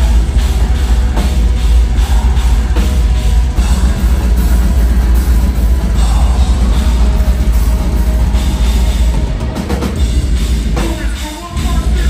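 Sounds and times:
heavy metal band playing loud: 0.0 - 12.0.

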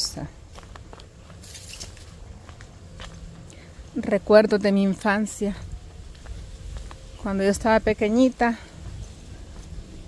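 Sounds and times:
footsteps on dirt path: 0.0 - 10.0
low steady rumble: 0.0 - 10.0.

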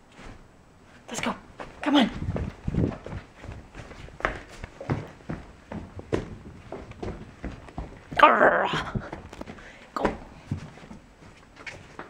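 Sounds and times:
soft footsteps: 0.0 - 12.0.

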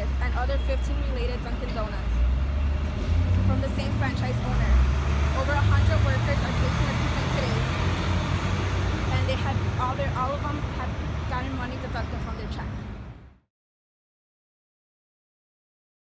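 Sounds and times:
road traffic rumble: 0.0 - 13.5.

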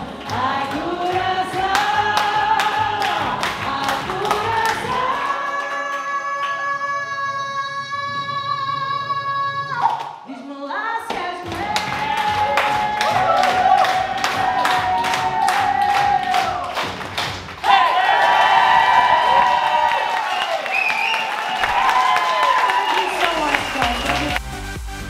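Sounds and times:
pop backing music: 0.0 - 5.6, 11.0 - 17.7, 23.0 - 25.0
woman singing into a microphone: 0.0 - 12.5.

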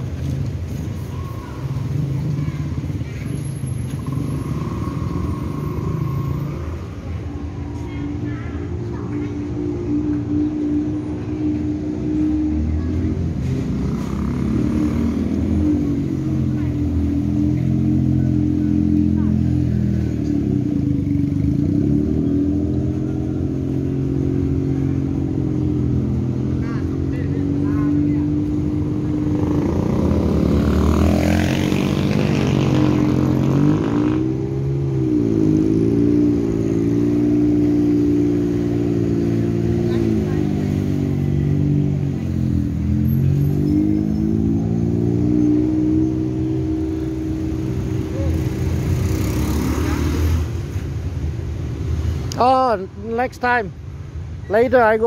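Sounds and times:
vehicle passing close: 0.0 - 52.3
engines revving in traffic: 0.0 - 55.0.

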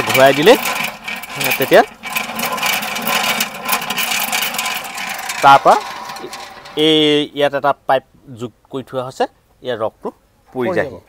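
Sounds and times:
honey extractor gear whirring: 0.0 - 7.3.

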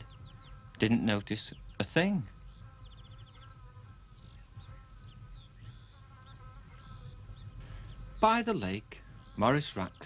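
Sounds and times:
faint bird chirps and trill: 0.0 - 10.0
insect buzzing hum: 0.0 - 10.0.

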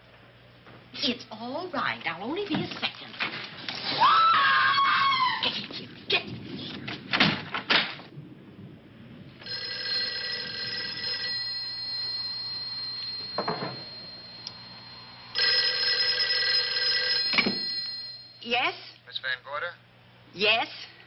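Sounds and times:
telephone bell ringing: 9.4 - 18.5.

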